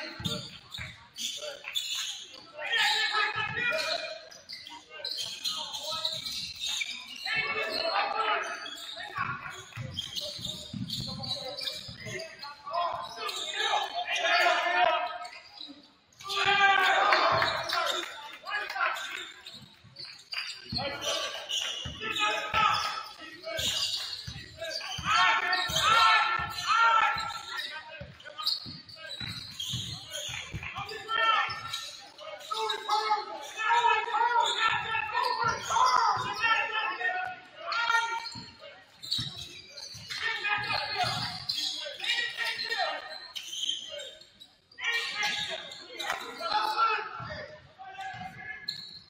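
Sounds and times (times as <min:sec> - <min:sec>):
people shouting in a gym: 0:00.0 - 0:19.5, 0:20.6 - 0:44.2, 0:44.8 - 0:48.8
basketball bouncing on wooden floor: 0:09.8 - 0:12.2.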